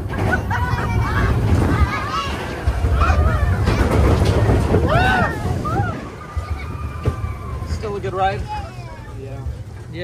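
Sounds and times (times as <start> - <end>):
roller coaster train rumble: 0.0 - 10.0
wind: 0.0 - 10.0
riders whooping and yelling: 4.6 - 7.8.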